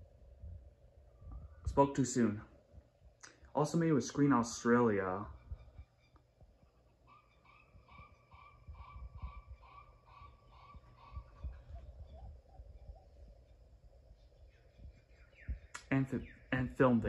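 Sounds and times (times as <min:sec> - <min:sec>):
soft low blips: 0:00.0 - 0:03.3, 0:07.6 - 0:17.0
faint chirp-like notes: 0:00.0 - 0:17.0.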